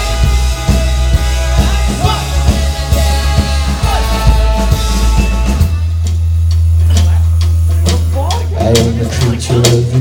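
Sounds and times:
drum and cymbal hits: 0:00.0 - 0:10.0
live indie rock band playing: 0:00.0 - 0:10.0
voice: 0:06.8 - 0:10.0.

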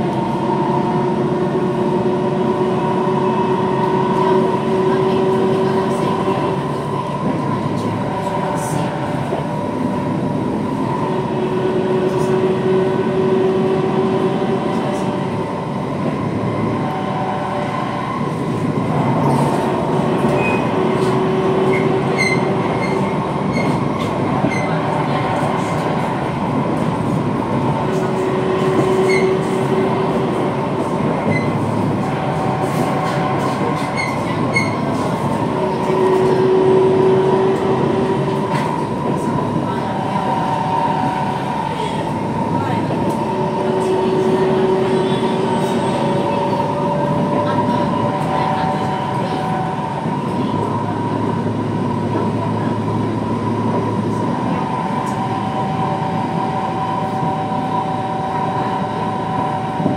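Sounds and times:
train wheels rolling on rail: 0:00.0 - 0:59.9.

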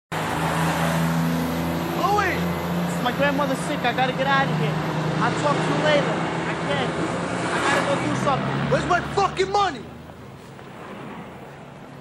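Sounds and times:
street traffic noise: 0:00.1 - 0:12.0
vehicle engine humming: 0:00.1 - 0:12.0.

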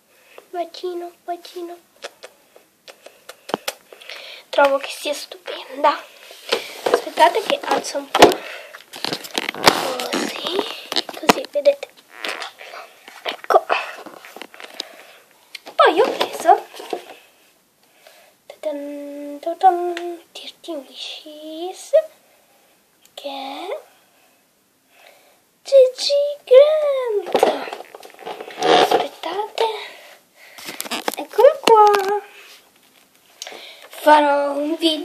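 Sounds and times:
girl's wordless exclamation: 0:13.5 - 0:14.0, 0:25.7 - 0:27.8.

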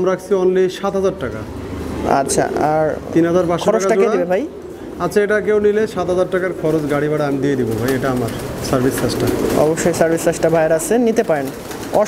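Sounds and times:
pigeons cooing: 0:01.5 - 0:12.0.

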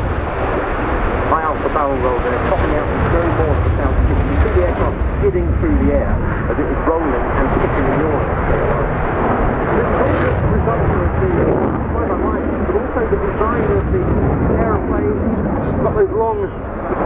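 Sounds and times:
jet engines rumbling: 0:00.0 - 0:17.0.

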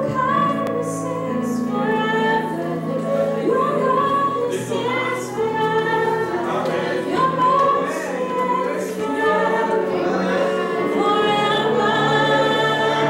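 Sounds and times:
woman singing into a microphone: 0:00.0 - 0:10.0, 0:10.7 - 0:13.0
choir singing: 0:00.0 - 0:13.0.

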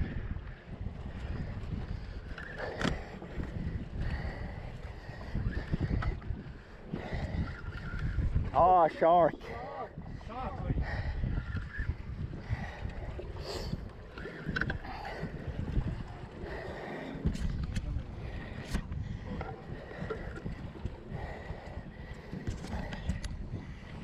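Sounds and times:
sea water rushing around boat: 0:00.0 - 0:24.0
wind buffeting microphone: 0:00.0 - 0:24.0.

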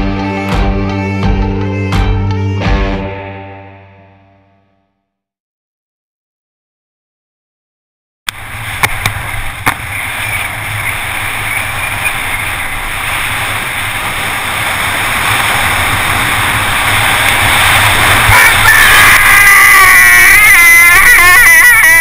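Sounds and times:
bike tyres hissing on wet tarmac: 0:08.3 - 0:22.0
high-pitched brake squeal: 0:18.3 - 0:22.0.

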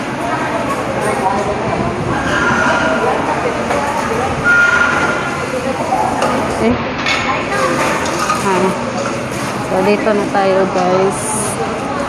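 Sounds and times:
hubbub of background voices: 0:00.0 - 0:12.0
kitchen noise: 0:02.3 - 0:12.0.

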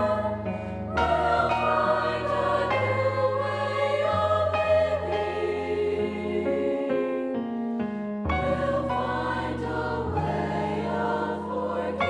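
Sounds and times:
choir singing in harmony: 0:00.0 - 0:07.4, 0:08.3 - 0:12.0.

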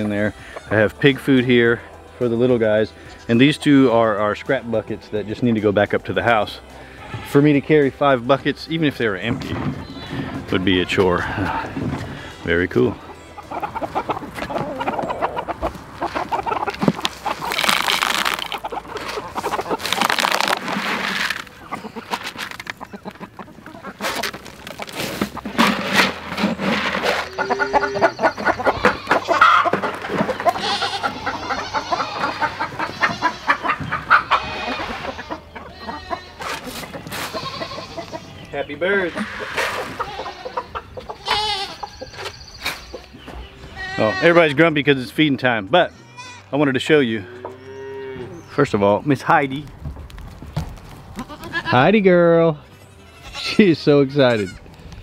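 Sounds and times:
chickens and roosters clucking: 0:00.0 - 0:55.0.

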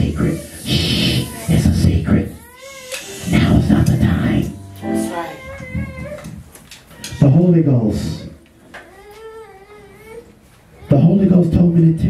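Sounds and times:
high gliding vocal cry: 0:00.0 - 0:01.8, 0:02.4 - 0:03.6, 0:04.4 - 0:06.2.

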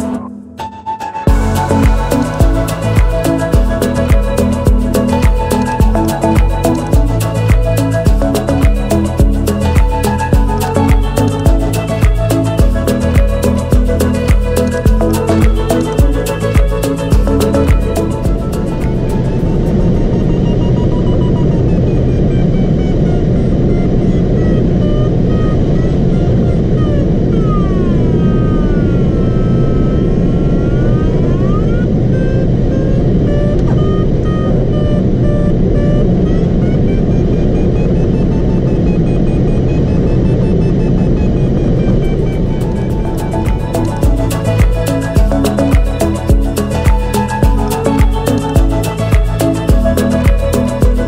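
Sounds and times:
continuous electronic tone: 0:00.0 - 0:51.0
variometer beeping: 0:01.3 - 0:23.7
rush of air around cockpit: 0:01.3 - 0:46.3.

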